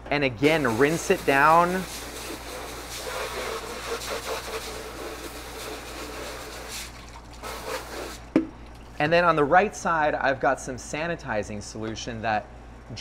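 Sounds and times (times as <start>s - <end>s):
water spraying into a steel sink: 0.4s - 9.0s.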